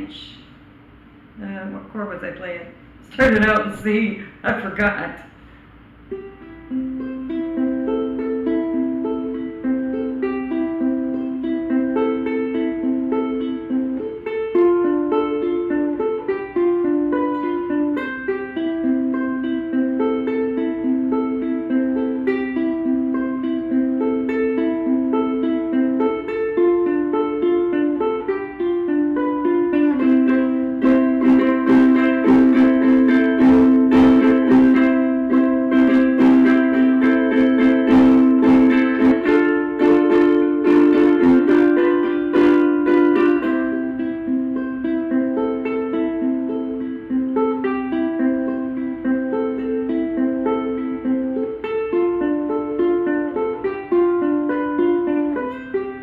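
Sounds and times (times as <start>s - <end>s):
ukulele strummed chords: 5.8s - 56.0s
ukulele plucked notes: 6.0s - 56.0s.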